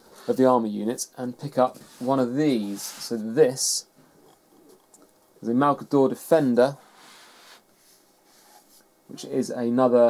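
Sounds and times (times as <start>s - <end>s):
model sliding across tabletop mat: 1.6s - 3.4s, 6.7s - 8.8s.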